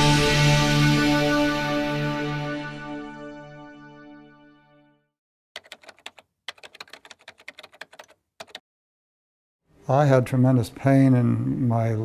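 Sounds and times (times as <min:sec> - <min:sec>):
keyboard typing clicks: 0:05.6 - 0:08.6.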